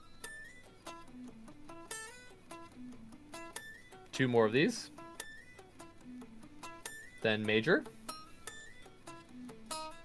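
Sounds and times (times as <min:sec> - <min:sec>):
electric guitar single-note lick: 0:00.0 - 0:10.0.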